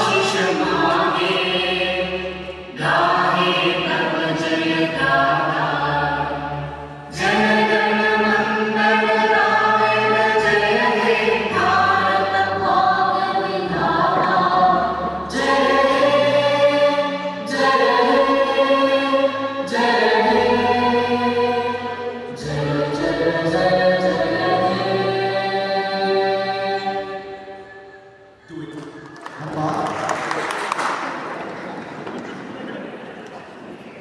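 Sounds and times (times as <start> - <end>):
choir singing with accompaniment: 0.0 - 29.1.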